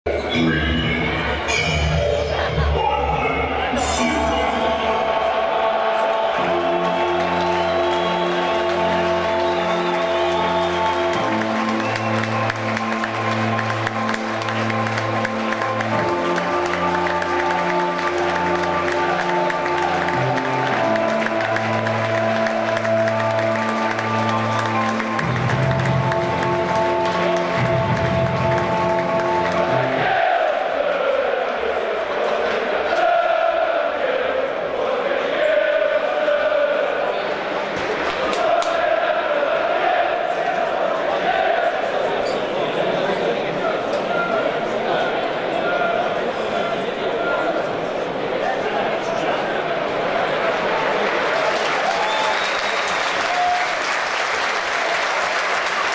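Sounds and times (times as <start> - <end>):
stadium crowd singing a chant: 3.4 - 11.8, 29.5 - 51.3
music with long held chords: 3.4 - 32.2.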